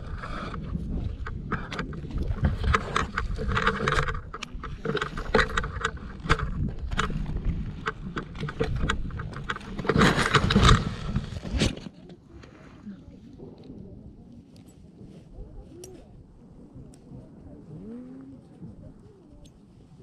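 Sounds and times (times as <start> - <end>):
wind rushing over microphone: 0.0 - 11.9
knocks and rattles of camera pole: 1.1 - 11.9.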